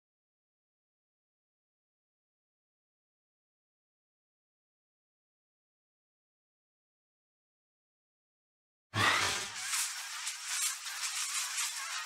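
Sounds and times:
bright crackling hiss: 9.4s - 12.0s.

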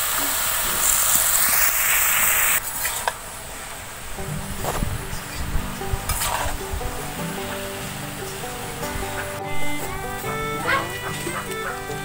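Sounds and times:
vegetables sizzling in a pan: 0.0s - 3.1s, 5.1s - 9.4s
background music: 4.2s - 12.0s
metal spatula scraping a pan: 4.4s - 7.7s.

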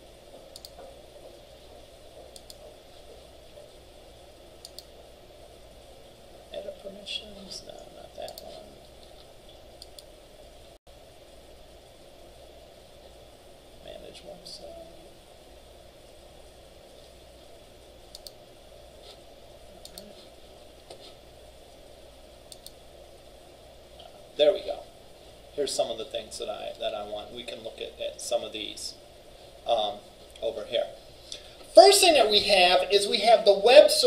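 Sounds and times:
faint room hum: 0.0s - 34.0s
computer mouse clicks: 0.5s - 1.0s, 2.3s - 2.6s, 4.6s - 4.9s, 8.2s - 9.2s, 9.8s - 10.1s, 18.1s - 18.4s, 19.8s - 20.2s, 22.5s - 22.8s.

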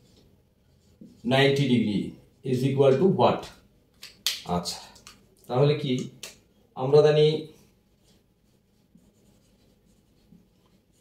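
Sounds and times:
marker writing on whiteboard: 0.0s - 1.6s, 7.9s - 11.0s.

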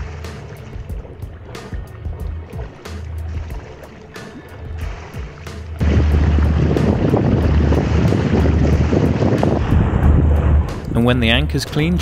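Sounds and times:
background music: 0.0s - 12.0s
water rushing past boat: 0.0s - 12.0s
wind buffeting microphone: 5.8s - 12.0s.

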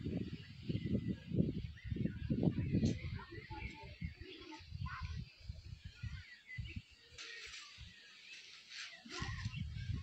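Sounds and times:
wind rumbling on microphone: 0.0s - 10.0s
faint bird chirps: 0.1s - 10.0s.

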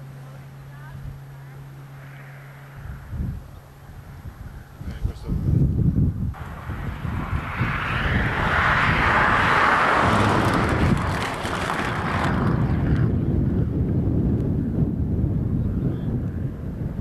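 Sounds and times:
steady low rumble: 0.0s - 17.0s
rally car passing at speed: 6.4s - 13.3s.

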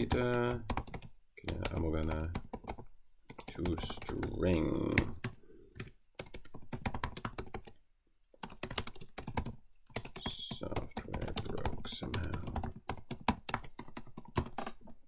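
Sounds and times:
typing on computer keyboard: 0.0s - 7.8s, 8.4s - 14.9s.

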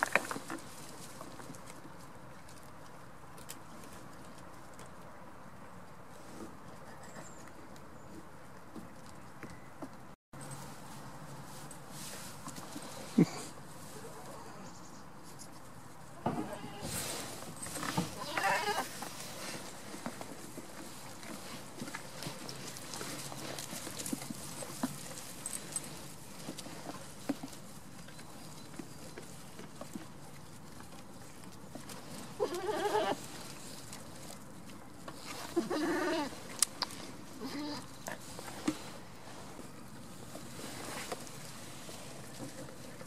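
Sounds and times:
goat bleating: 16.2s - 16.9s, 18.1s - 19.0s, 32.4s - 33.2s, 35.5s - 36.4s, 37.4s - 37.8s.

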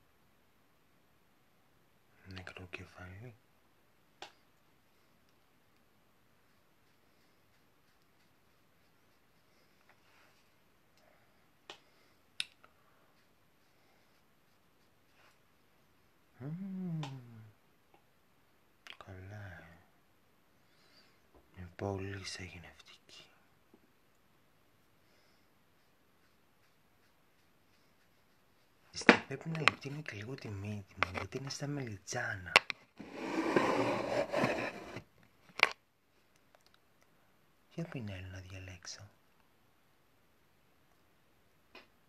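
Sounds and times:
woman humming mmm: 16.4s - 17.6s
scraping rustle of small objects: 32.9s - 35.1s.

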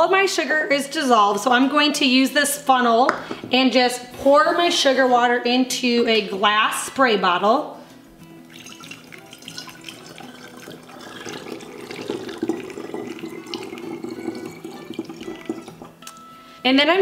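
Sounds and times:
liquid trickling into bottle: 8.5s - 16.0s.

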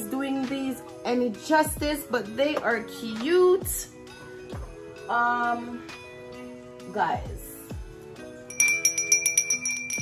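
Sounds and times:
small bell ringing: 8.5s - 10.0s.

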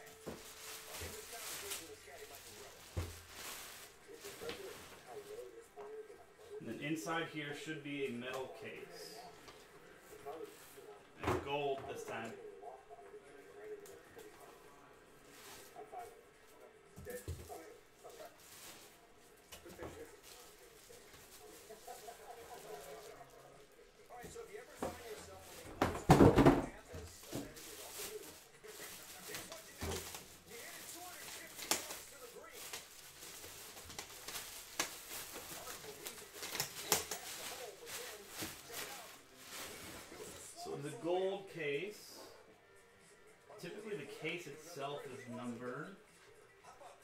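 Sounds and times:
plastic wrap crinkling: 0.0s - 5.5s, 17.0s - 40.4s.

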